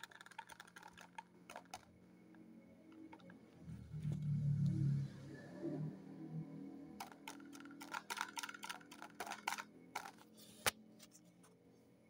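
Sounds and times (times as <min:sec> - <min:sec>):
fingers tapping soap and box: 0:00.0 - 0:01.9.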